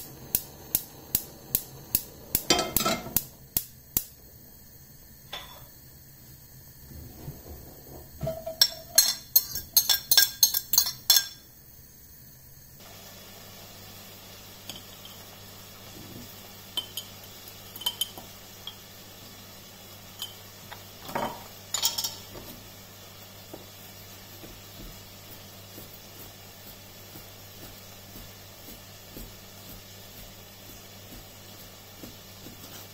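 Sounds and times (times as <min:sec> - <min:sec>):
gas hob igniter clicking: 0:00.0 - 0:05.8, 0:14.2 - 0:28.0.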